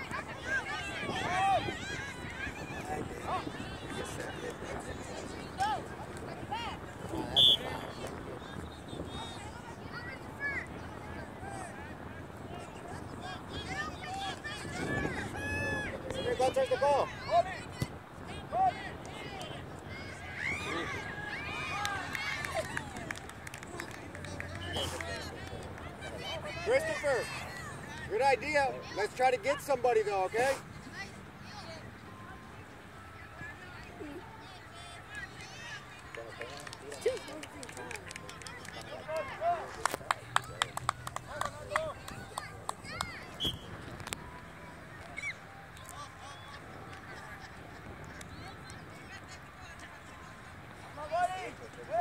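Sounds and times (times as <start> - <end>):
people shouting and calling: 0.0 - 4.8, 12.6 - 23.1
murmur of crowd chatter: 0.0 - 52.0
open field ambience: 0.0 - 52.0.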